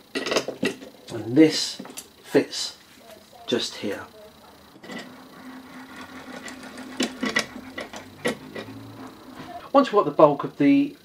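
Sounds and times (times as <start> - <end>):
steady low hum: 0.0 - 11.0
metal parts clicking and clinking: 0.1 - 1.0, 5.9 - 8.8.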